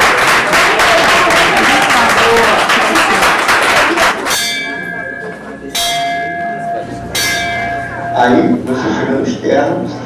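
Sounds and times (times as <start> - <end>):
applause: 0.0 - 4.3
bell ringing: 4.3 - 8.7.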